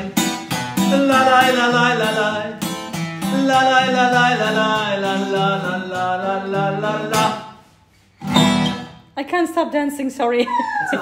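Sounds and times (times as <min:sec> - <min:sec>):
man singing: 0:00.0 - 0:07.6
acoustic guitar strumming: 0:00.0 - 0:09.1.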